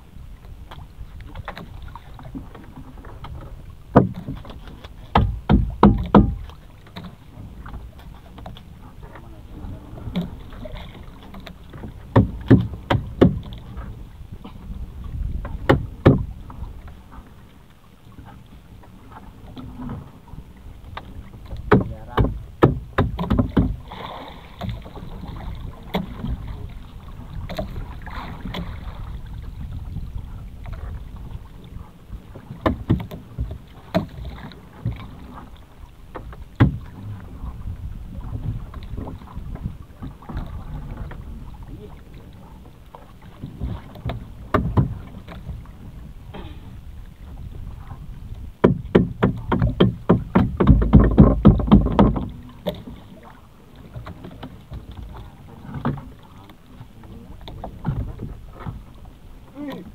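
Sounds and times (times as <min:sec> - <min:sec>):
low rumble of wind and water: 0:00.0 - 0:59.9
knocks and clatter against boat: 0:00.2 - 0:59.9.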